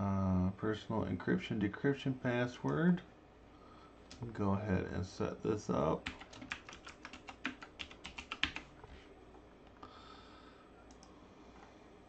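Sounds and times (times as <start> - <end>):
typing on computer keyboard: 6.0 - 8.7.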